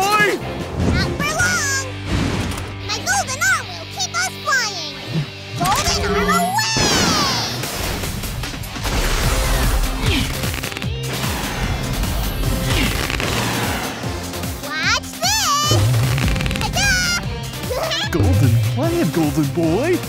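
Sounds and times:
cartoon action music: 0:00.0 - 0:20.0
high wavering cry: 0:05.8 - 0:07.2.

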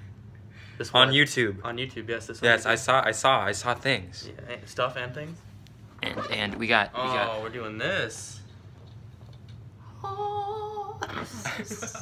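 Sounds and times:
low background hum: 0:00.0 - 0:12.0
person humming a high note: 0:10.0 - 0:11.1.

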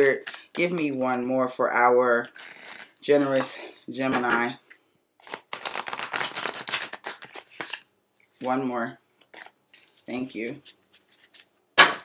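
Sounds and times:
cards shuffled by hand: 0:02.2 - 0:03.5, 0:05.2 - 0:07.8.

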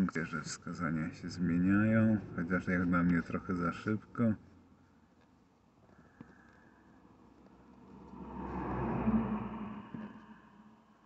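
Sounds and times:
muffled vehicle passing by: 0:07.2 - 0:11.0.

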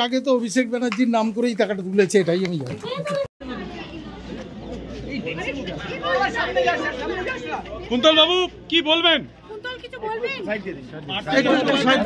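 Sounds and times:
babble of overlapping voices: 0:02.1 - 0:12.0.

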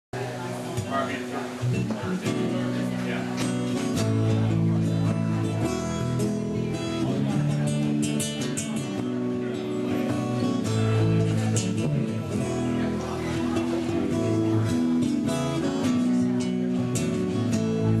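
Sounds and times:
acoustic guitars playing: 0:00.2 - 0:18.0
electric bass: 0:01.5 - 0:18.0.

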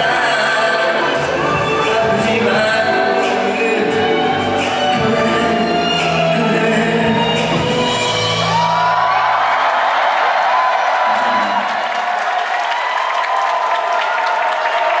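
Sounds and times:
live pop song: 0:00.0 - 0:09.1
crowd cheering and screaming: 0:04.4 - 0:15.0.

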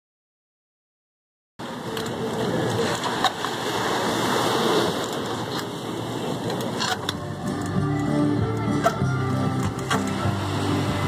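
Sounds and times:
surf washing over rocks: 0:01.6 - 0:07.7, 0:09.4 - 0:11.0.

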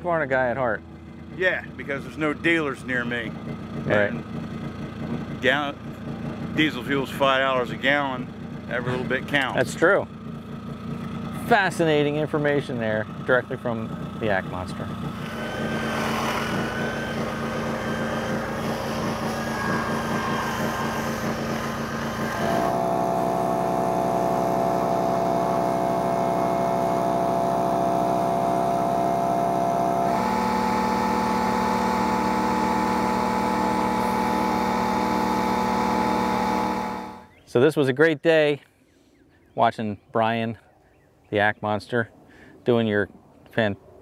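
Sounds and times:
chainsaw running at high revs: 0:01.3 - 0:12.2, 0:13.1 - 0:37.3.

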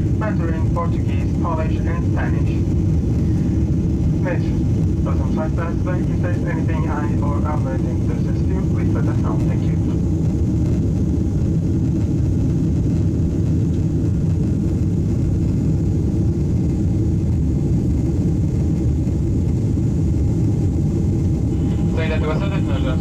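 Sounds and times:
jet engines rumbling in cabin: 0:00.0 - 0:23.0
rushing air: 0:02.8 - 0:05.0.

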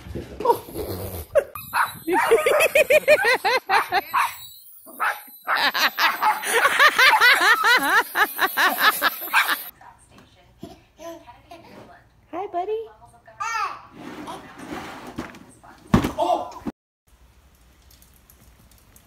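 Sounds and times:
dog barking rapidly: 0:01.6 - 0:02.8.

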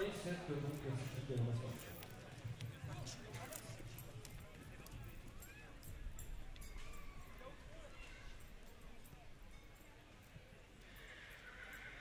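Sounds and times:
horse whinnying: 0:10.8 - 0:12.0.

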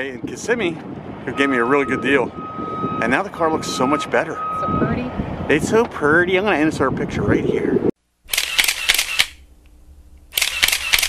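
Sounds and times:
rapid camera shutter clicks: 0:08.3 - 0:09.4, 0:10.3 - 0:11.0.

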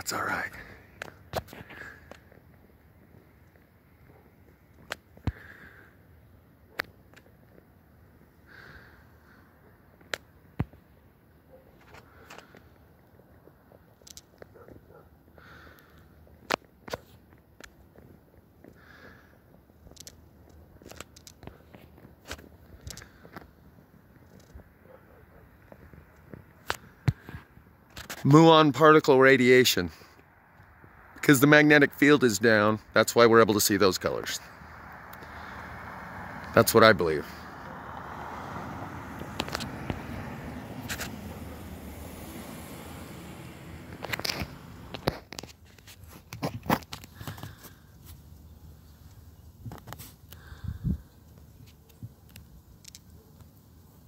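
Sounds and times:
outdoor background noise: 0:00.0 - 0:54.0
faint clicks and rustles: 0:15.7 - 0:28.3, 0:43.9 - 0:54.0
low outdoor rumble: 0:29.9 - 0:45.4.

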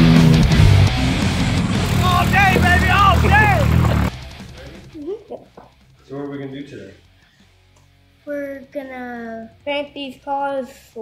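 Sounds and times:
car engine running: 0:00.0 - 0:05.0
man whooping shouts: 0:02.0 - 0:03.8.

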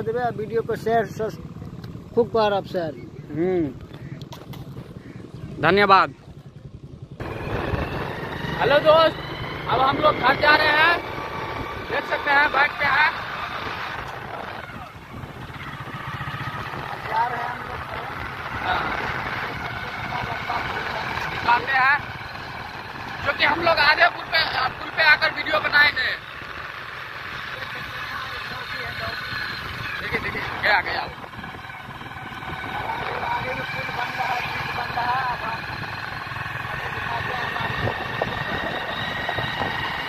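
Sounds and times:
motorcycle engine running: 0:00.0 - 0:40.0
wind and road noise: 0:00.0 - 0:40.0.

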